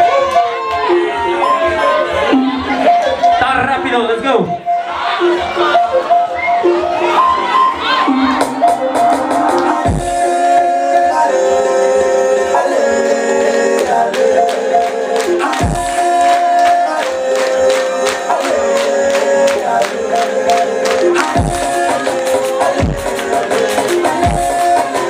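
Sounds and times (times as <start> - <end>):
electronic dance music: 0.0 - 25.0.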